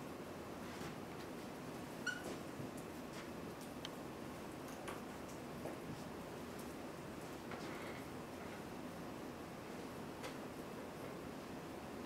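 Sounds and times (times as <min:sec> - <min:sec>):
room hiss: 0:00.0 - 0:12.0
marker squeaking on whiteboard: 0:02.0 - 0:02.3.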